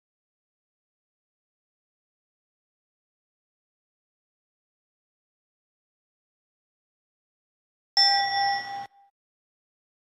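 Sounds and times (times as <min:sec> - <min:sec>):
bright bell ding: 0:08.0 - 0:09.1.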